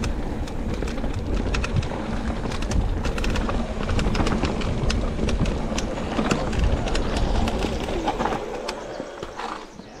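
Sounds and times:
bike tyre rumble: 0:00.0 - 0:10.0
wind: 0:00.0 - 0:10.0.

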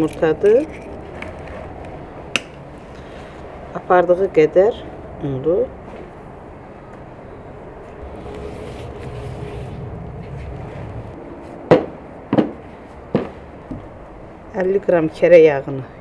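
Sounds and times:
steady background noise: 0:00.0 - 0:16.0.

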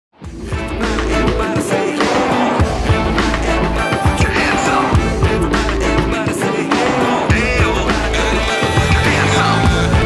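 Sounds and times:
rock band music: 0:00.2 - 0:10.0.

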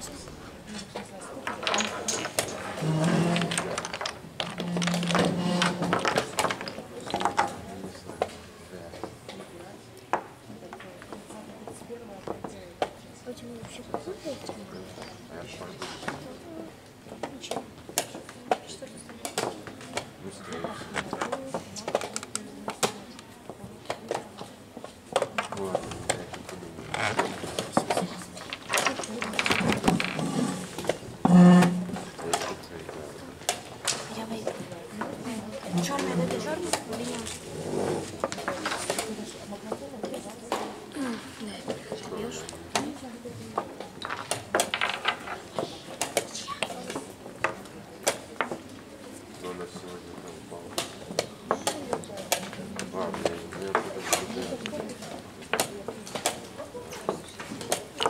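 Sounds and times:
chess pieces clacking on board: 0:00.9 - 0:07.6, 0:24.8 - 0:39.2, 0:43.6 - 0:48.6.

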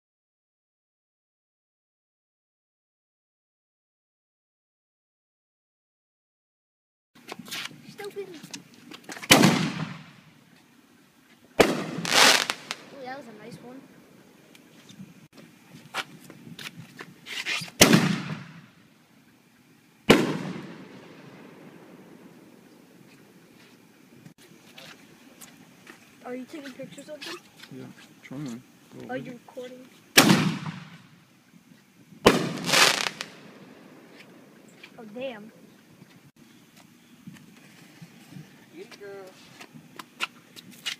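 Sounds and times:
fireworks exploding: 0:09.1 - 0:10.4, 0:11.6 - 0:15.2, 0:17.0 - 0:18.8, 0:20.0 - 0:23.6, 0:30.1 - 0:31.2, 0:32.2 - 0:35.0.

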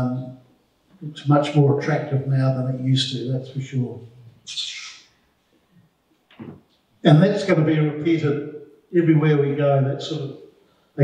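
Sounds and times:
breath into microphone: 0:10.5 - 0:11.0.

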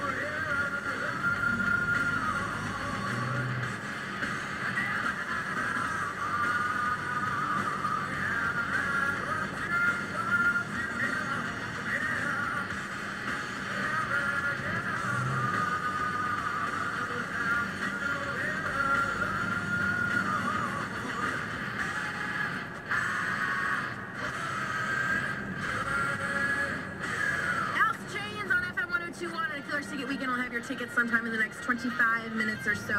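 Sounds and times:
music on car radio: 0:00.0 - 0:32.9.

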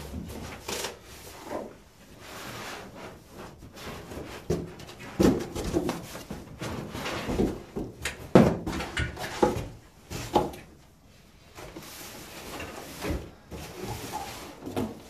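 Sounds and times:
cardboard box rustling and scraping: 0:11.5 - 0:15.0.

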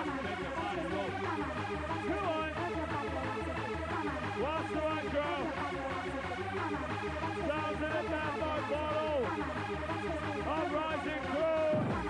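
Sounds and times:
rave techno music: 0:00.0 - 0:12.0.

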